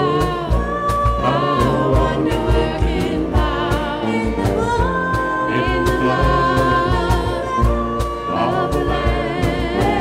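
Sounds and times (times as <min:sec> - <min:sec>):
voices singing: 0:00.0 - 0:10.0
worship band playing: 0:00.0 - 0:10.0.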